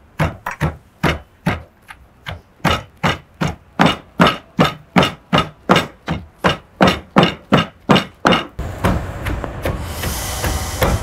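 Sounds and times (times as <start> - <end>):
pestle pounding in stone mortar: 0.0 - 11.0.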